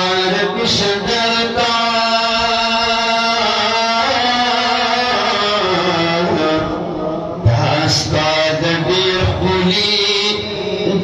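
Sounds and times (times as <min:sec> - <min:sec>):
man chanting into a microphone: 0:00.0 - 0:11.0.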